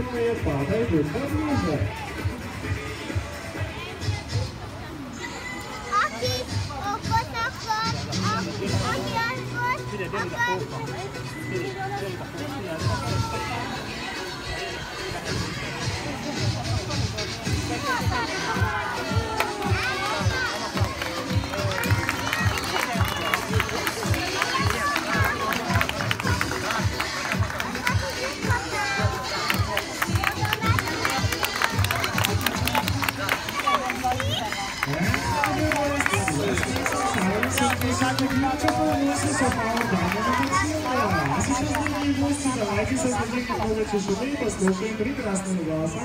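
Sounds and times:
background music with steady beat: 0.0s - 46.0s
people talking: 0.0s - 46.0s.

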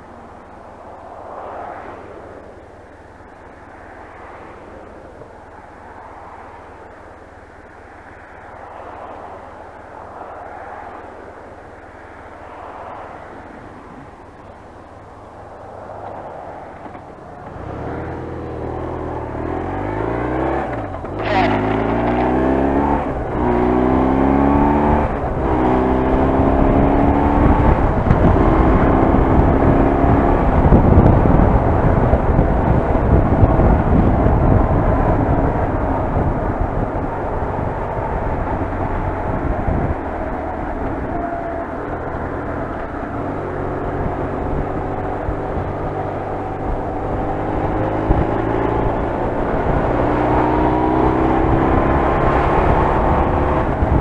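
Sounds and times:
wind noise: 0.0s - 54.0s
motorcycle engine revving: 16.8s - 54.0s.

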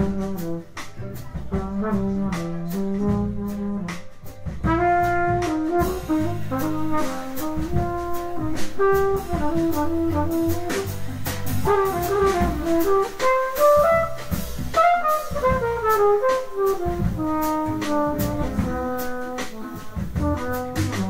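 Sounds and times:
trumpet solo: 0.0s - 4.0s, 4.6s - 21.0s
drum kit with cymbals: 0.0s - 21.0s
walking bass line: 0.0s - 21.0s.

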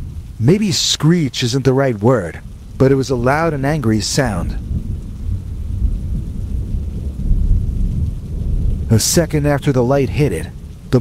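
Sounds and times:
faint rain-like hiss: 0.0s - 11.0s
low rumble: 0.0s - 11.0s.

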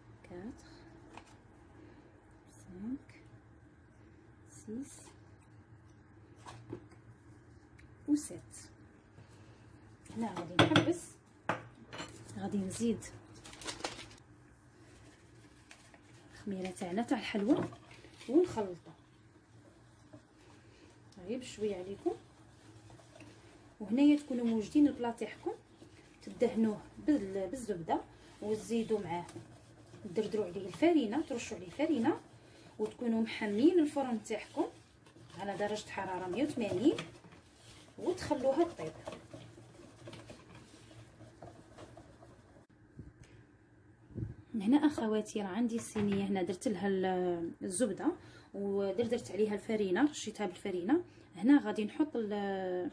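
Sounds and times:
woman speaking: 0.0s - 0.9s, 2.5s - 3.3s, 4.5s - 5.2s, 8.0s - 8.8s, 10.1s - 11.2s, 12.3s - 13.2s, 16.4s - 19.0s, 21.1s - 22.2s, 23.8s - 37.1s, 38.0s - 39.2s, 44.5s - 52.9s
whisk scraping a bowl: 16.9s - 42.7s.

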